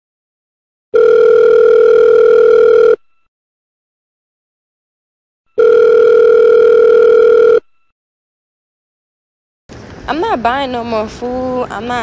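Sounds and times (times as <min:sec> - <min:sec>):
telephone ringback tone: 0:00.9 - 0:03.3, 0:05.6 - 0:07.9.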